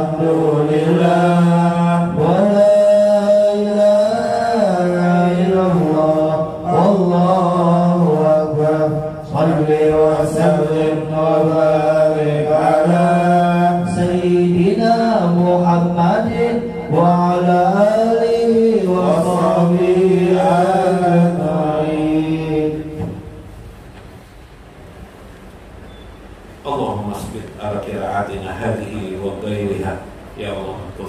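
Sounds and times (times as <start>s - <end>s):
man chanting: 0.0s - 23.1s.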